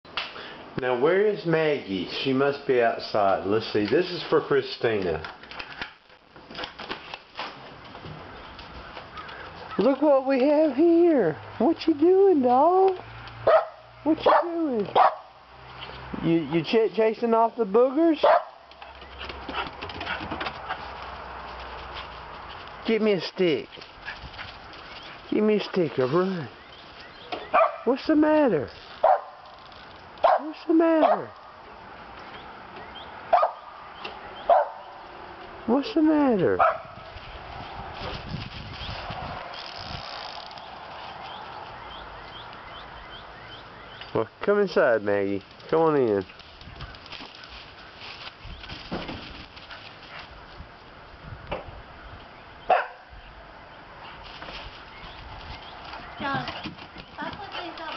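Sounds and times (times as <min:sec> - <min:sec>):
small dog barking: 0:13.4 - 0:15.4, 0:18.2 - 0:18.6, 0:27.5 - 0:27.9, 0:29.0 - 0:29.4, 0:30.2 - 0:31.4, 0:33.3 - 0:33.7, 0:34.5 - 0:34.9, 0:36.6 - 0:36.9, 0:52.7 - 0:53.1
dog running across yard: 0:18.2 - 0:27.8, 0:45.3 - 0:50.6.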